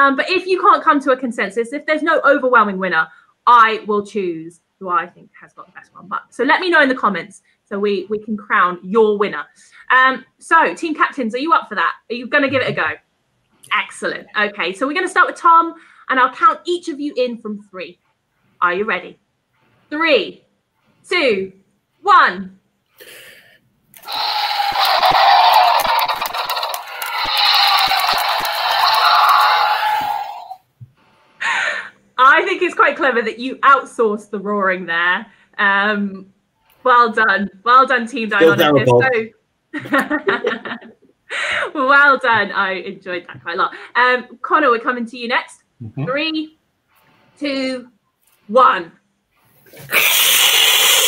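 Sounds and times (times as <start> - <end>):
man imitating dinosaur roar: 38.4 - 39.1, 45.8 - 46.1
man hissing through teeth: 49.7 - 51.0.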